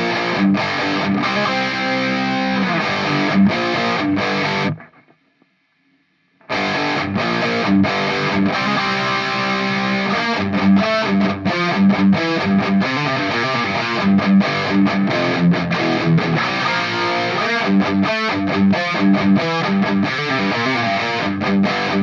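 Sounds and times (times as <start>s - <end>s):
distorted electric guitar riff: 0.0s - 5.3s, 6.4s - 22.0s.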